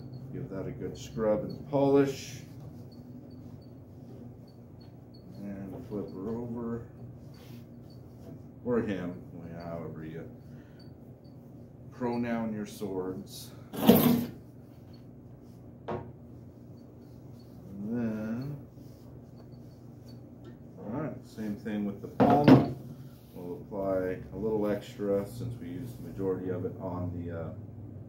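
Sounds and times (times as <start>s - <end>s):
cloth squeaking on steel: 0.0s - 9.8s
cloth rubbing on steel: 0.0s - 22.2s, 22.8s - 23.9s
low steady hum: 0.0s - 28.0s.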